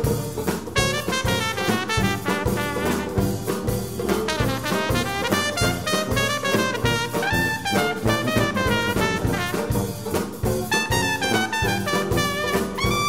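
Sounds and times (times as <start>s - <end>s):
banjo: 0.0s - 13.0s
drum kit: 0.0s - 13.0s
trombone: 0.0s - 13.0s
trumpet: 0.7s - 13.0s.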